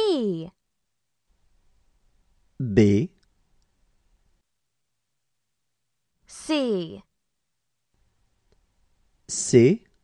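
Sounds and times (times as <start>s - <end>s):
person speaking: 0.0s - 0.6s, 2.6s - 3.4s, 6.3s - 7.1s, 9.2s - 10.0s.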